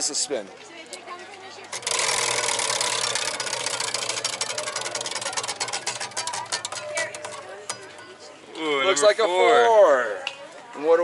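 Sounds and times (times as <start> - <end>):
prize wheel clicking: 1.6 - 8.4.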